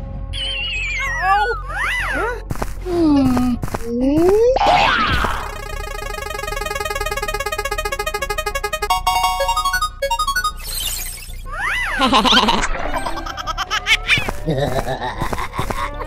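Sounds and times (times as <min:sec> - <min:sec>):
prize wheel ticking: 0:05.2 - 0:11.4.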